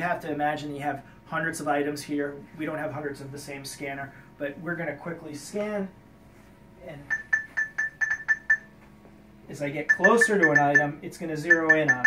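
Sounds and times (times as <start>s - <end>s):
short high beeps: 9.9s - 12.0s.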